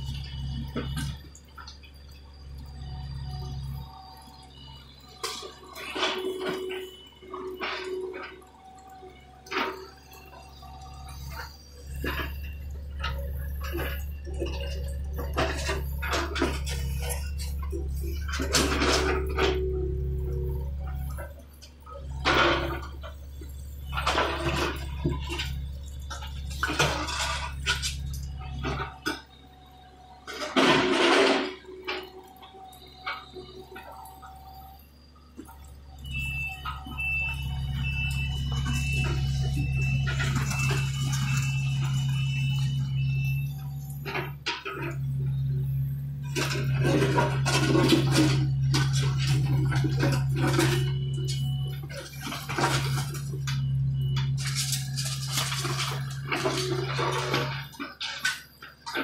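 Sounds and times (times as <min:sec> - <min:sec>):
electronic alarm beeping: 0:00.0 - 0:59.0
excavator diesel engine running: 0:00.0 - 0:59.0.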